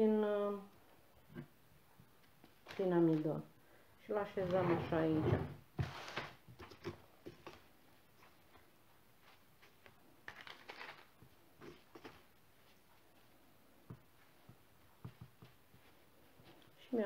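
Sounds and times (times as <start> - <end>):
hands rustling paper: 5.8 - 13.1.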